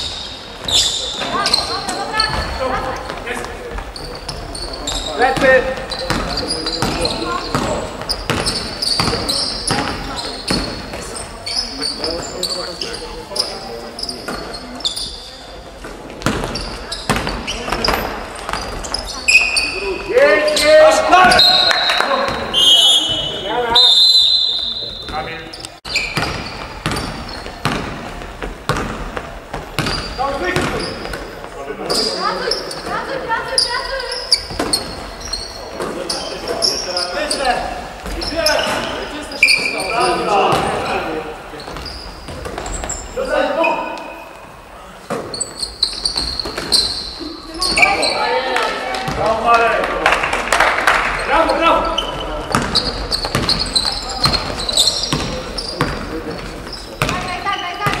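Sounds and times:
sneakers squeaking on floor: 0.0s - 49.6s, 51.1s - 58.0s
basketball bouncing on wooden court: 0.6s - 11.2s, 15.8s - 19.1s, 25.9s - 31.3s, 34.3s - 35.4s, 40.5s - 40.9s, 51.9s - 58.0s
players calling out: 16.3s - 28.0s.

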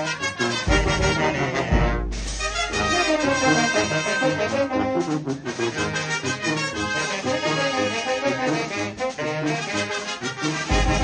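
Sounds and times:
brass band playing: 0.0s - 11.0s
saxophones and clarinets: 0.0s - 11.0s
trombones: 0.0s - 11.0s.

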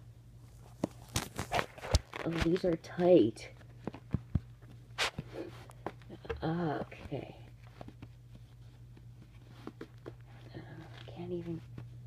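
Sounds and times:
soft handling knocks and scuffs: 0.6s - 1.6s, 2.4s - 12.0s.

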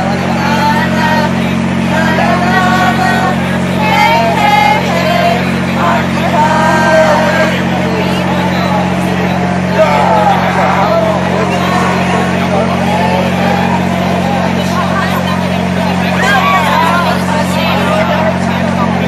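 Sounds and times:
generator droning hum: 0.0s - 19.0s
indistinct crowd voices: 0.0s - 19.0s.

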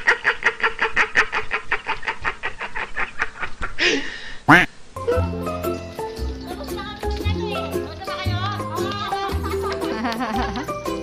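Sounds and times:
man laughing hysterically: 0.0s - 4.7s, 9.4s - 10.8s
high breathy sounds: 3.8s - 4.6s
background music: 5.0s - 11.0s.

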